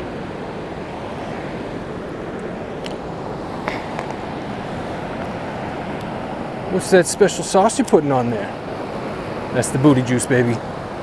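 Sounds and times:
river rushing: 0.0 - 11.0.

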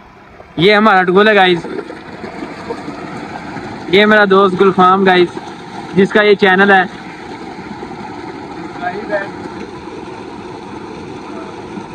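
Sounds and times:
water gushing from a pipe: 0.7 - 11.9
water splashing into a tank: 1.2 - 11.9.

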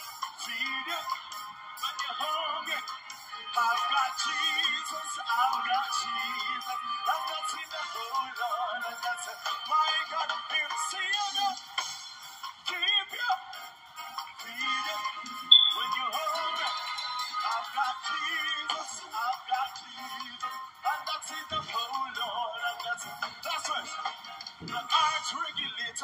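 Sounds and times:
man singing gospel song: 0.4 - 11.8, 12.6 - 13.6, 14.4 - 26.0.

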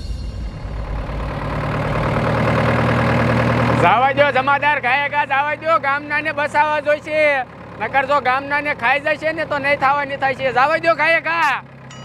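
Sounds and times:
jeep engine running: 0.0 - 12.0.

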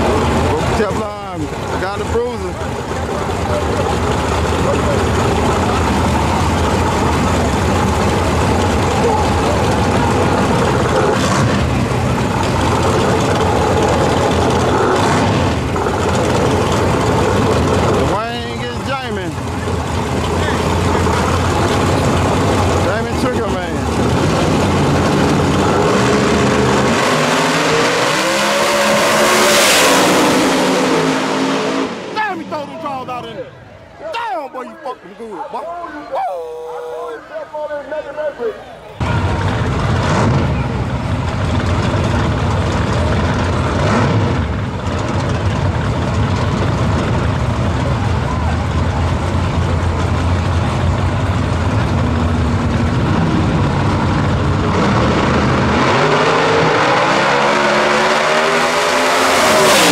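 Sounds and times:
crowd voices: 0.0 - 14.7, 15.4 - 26.9, 31.8 - 42.7, 47.4 - 54.4
drag-race car engines accelerating: 0.0 - 37.2, 38.8 - 59.9.

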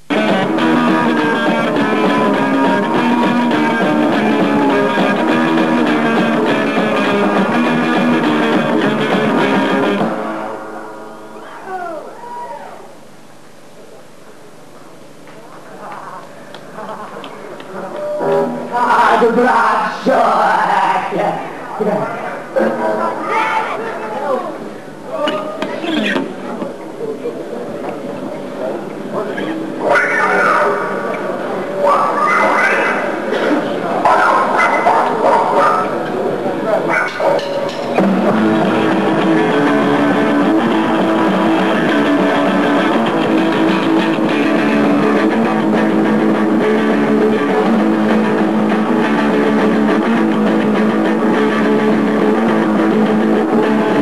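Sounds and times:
band music: 0.0 - 11.8, 29.5 - 54.0
hall noise: 0.0 - 13.9, 14.5 - 54.0
live room noise: 0.0 - 54.0
high wailing cry: 29.9 - 31.0.

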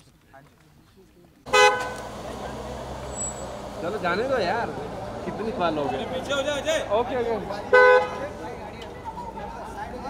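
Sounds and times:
street noise: 0.0 - 10.0
car engine idling: 1.5 - 10.0.

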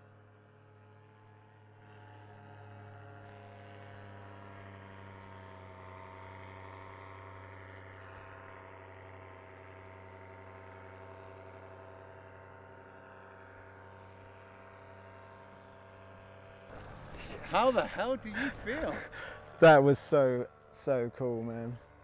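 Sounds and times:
motor humming steadily: 1.8 - 22.0.

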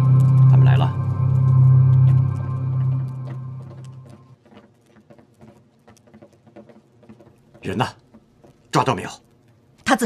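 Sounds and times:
background music: 0.0 - 4.4
footsteps on hard floor: 1.1 - 8.8.

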